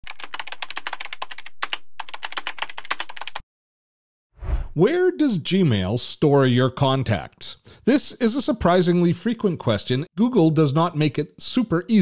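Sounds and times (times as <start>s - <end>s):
rapid keyboard typing: 0.0s - 3.4s.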